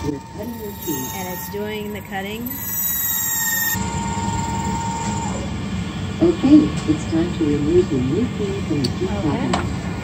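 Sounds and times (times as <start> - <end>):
key-cutting machine whirring: 0.0 - 5.6.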